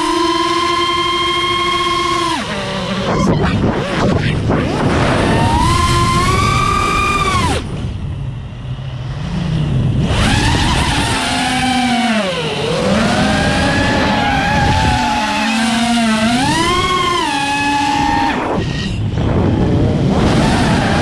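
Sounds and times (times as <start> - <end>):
drone motors whining: 0.0 - 21.0.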